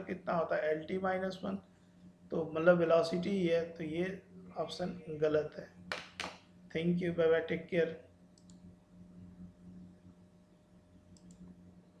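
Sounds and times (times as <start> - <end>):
low steady hum: 0.0 - 12.0
computer mouse clicks: 8.4 - 8.7, 11.1 - 11.6.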